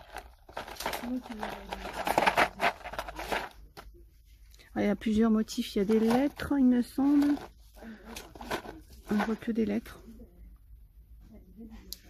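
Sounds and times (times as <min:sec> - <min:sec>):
cardboard packs crinkling: 0:00.0 - 0:03.7.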